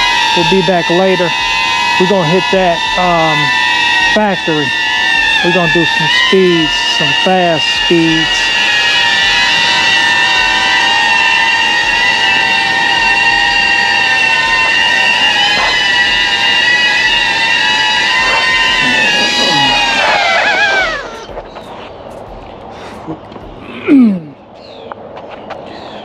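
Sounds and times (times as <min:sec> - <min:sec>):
drone propellers whining: 0:00.0 - 0:24.5.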